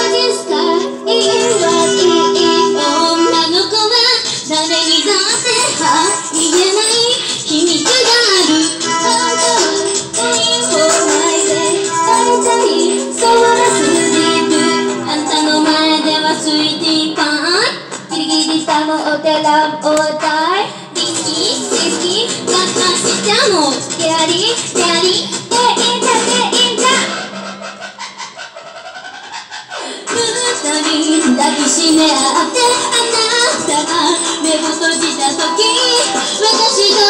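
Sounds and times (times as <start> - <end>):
woman singing pop song: 0.0 - 27.3, 29.8 - 37.0
backing music: 0.0 - 37.0.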